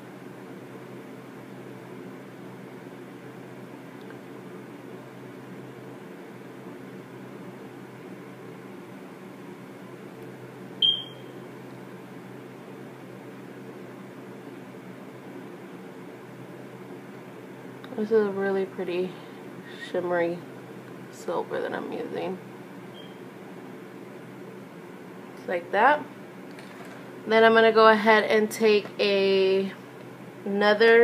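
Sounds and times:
steady low hum: 0.0s - 31.0s
high-pitched electronic beep: 10.8s - 11.2s.

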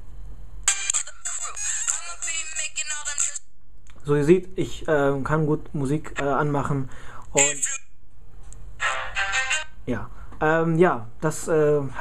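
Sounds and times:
song through phone speaker: 0.7s - 3.4s, 8.8s - 9.8s.

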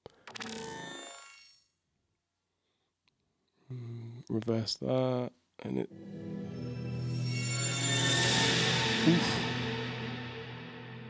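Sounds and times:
bell-like ringing tone: 5.9s - 11.0s.

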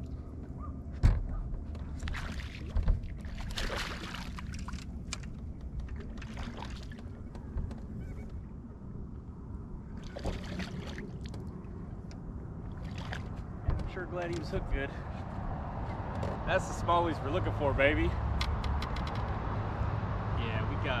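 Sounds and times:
fish splashing water: 2.0s - 4.9s, 6.0s - 7.2s, 10.0s - 11.4s, 12.7s - 13.4s.

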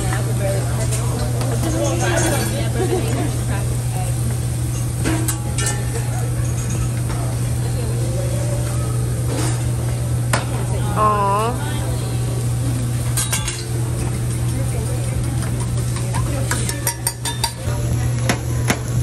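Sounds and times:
food sizzling on a griddle: 0.0s - 19.0s
metal spatula clacking on griddle: 13.1s - 13.8s, 15.3s - 17.7s.

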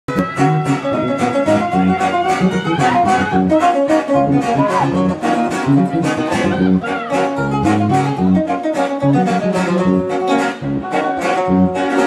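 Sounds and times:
quick guitar runs: 0.1s - 12.0s.

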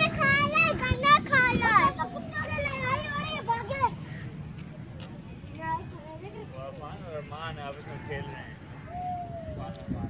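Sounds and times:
young child talking: 0.0s - 4.1s.

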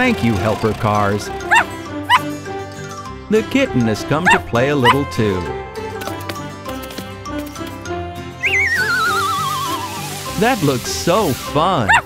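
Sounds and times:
background music: 0.0s - 12.0s
wobbling whistle sliding down: 8.4s - 10.3s.

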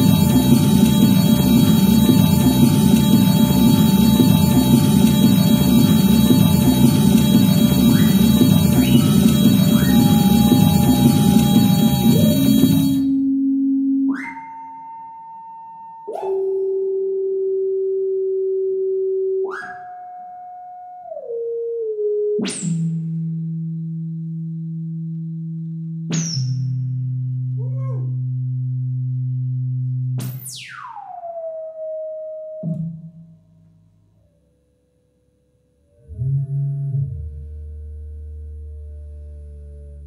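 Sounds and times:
higher synthesizer note: 0.0s - 13.3s
synthesizer steady tone: 0.0s - 13.4s.

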